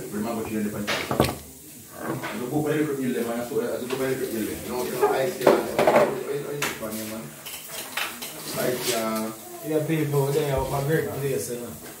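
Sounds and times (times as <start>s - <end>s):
glass bottles and cups clinking: 0.4s - 2.4s.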